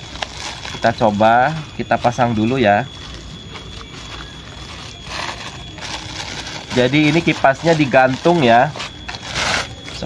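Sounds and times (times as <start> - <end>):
plastic bag rustling and crinkling: 0.0 - 1.4, 2.4 - 10.0.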